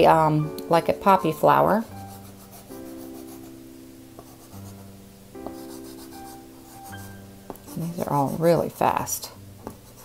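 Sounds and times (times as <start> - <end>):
background music sustained chords: 0.0 - 10.0
pastel scraping on paper: 2.0 - 3.5, 4.2 - 8.8.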